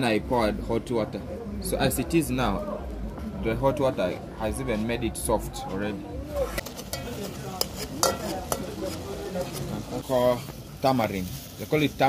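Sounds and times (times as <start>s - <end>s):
metal spoon stirring in saucepan: 6.4s - 12.0s
sauce sizzling in pan: 6.6s - 12.0s.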